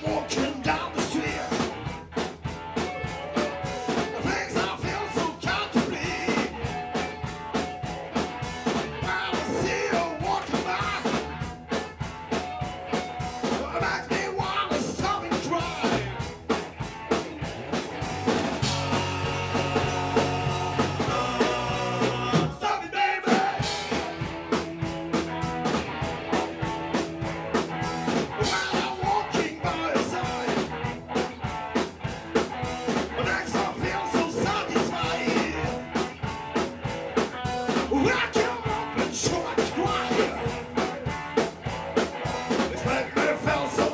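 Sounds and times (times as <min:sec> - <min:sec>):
live rock band playing: 0:00.0 - 0:43.9.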